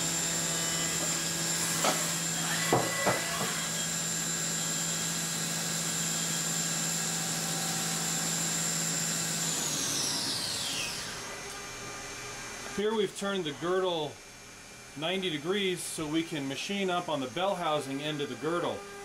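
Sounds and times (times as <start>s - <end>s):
milling spindle whine: 0.0s - 14.0s.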